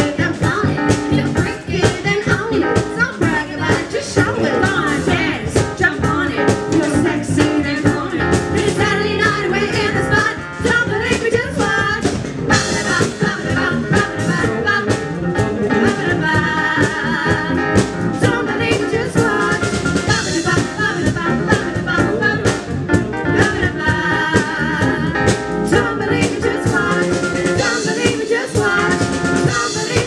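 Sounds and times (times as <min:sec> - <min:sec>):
bass guitar: 0:00.0 - 0:30.0
drum kit beat: 0:00.0 - 0:30.0
electric keyboard: 0:00.0 - 0:30.0
women singing: 0:00.0 - 0:30.0.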